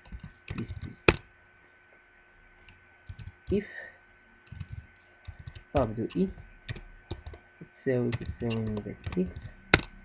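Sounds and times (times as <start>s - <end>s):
computer keyboard typing: 0.0s - 1.3s, 2.6s - 3.6s, 4.4s - 7.4s, 8.1s - 10.0s.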